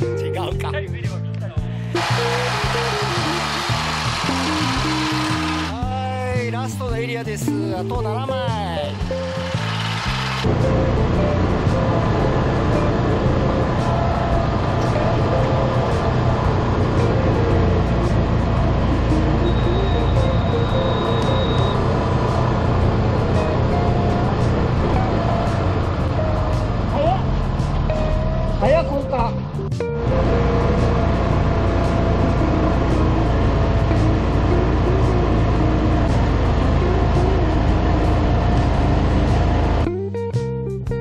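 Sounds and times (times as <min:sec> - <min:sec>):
rice transplanter engine running: 0:02.0 - 0:05.8, 0:08.8 - 0:26.9, 0:30.0 - 0:39.9.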